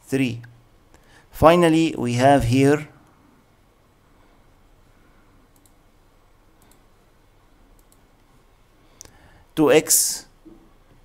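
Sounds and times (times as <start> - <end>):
low room noise: 0.0 - 11.0
computer mouse clicks: 5.5 - 5.8, 6.6 - 6.9, 7.7 - 8.3.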